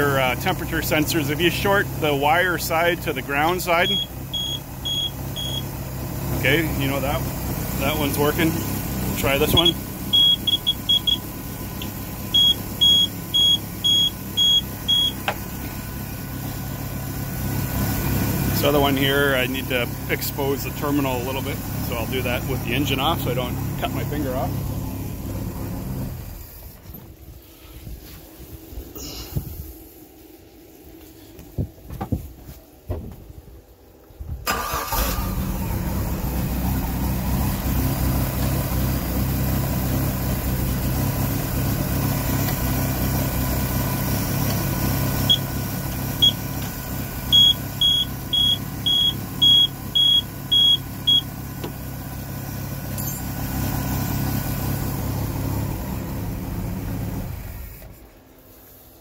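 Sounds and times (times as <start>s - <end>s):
short high alarm beeps: 3.9s - 5.6s, 9.6s - 11.2s, 12.4s - 15.2s, 47.3s - 51.3s.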